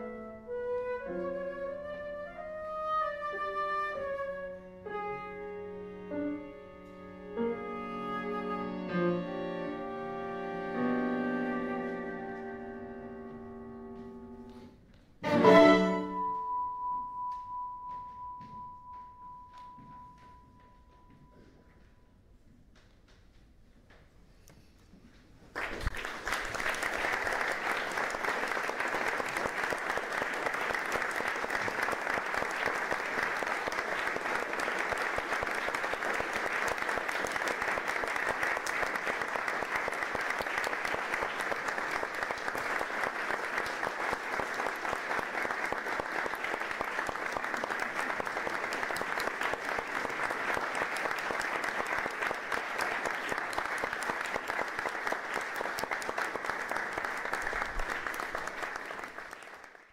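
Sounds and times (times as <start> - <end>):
audience applauding: 25.5 - 59.9.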